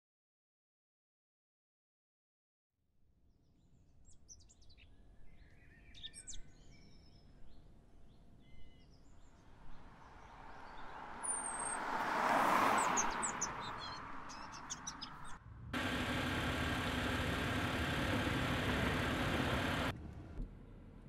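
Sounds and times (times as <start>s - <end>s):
birds chirping: 4.0s - 19.9s
car passing on road: 9.4s - 20.5s
car driving engine hum: 9.8s - 21.0s.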